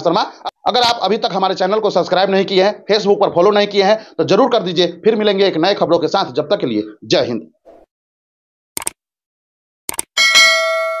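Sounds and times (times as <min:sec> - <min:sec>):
notification bell ding: 0:10.2 - 0:11.0.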